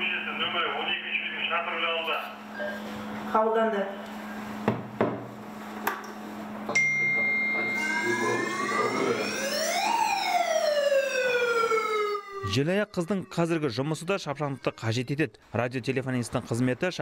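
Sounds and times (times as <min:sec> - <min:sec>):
steady high tone: 0:06.8 - 0:15.4
siren winding up: 0:07.6 - 0:15.4.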